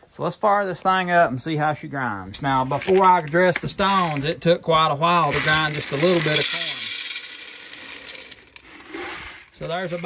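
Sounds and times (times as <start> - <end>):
corn kernels rattling on metal: 2.6 - 4.4, 5.0 - 10.0.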